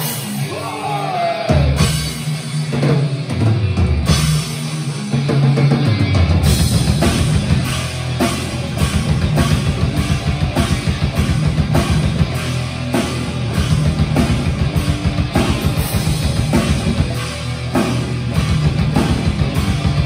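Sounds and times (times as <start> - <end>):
bass guitar: 0.0 - 20.0
distorted electric guitars: 0.0 - 20.0
drum kit: 0.0 - 20.0.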